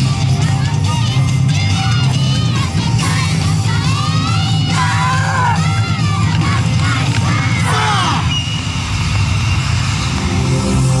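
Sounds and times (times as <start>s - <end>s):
dance music from loudspeakers: 0.0s - 11.0s
voices shouting calls: 4.7s - 5.9s, 7.5s - 8.4s.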